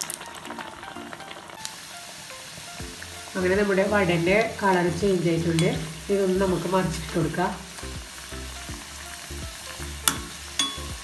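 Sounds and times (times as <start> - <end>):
oil sizzling deep-frying: 0.0 - 11.0
metal spoon clicking on pan: 5.5 - 6.0, 10.0 - 10.9.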